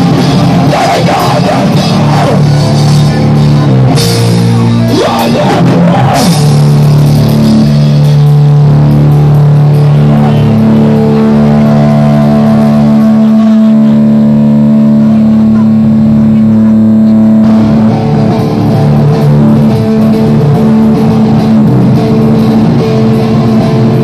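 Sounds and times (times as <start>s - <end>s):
electric guitar ringing notes: 0.0s - 24.0s.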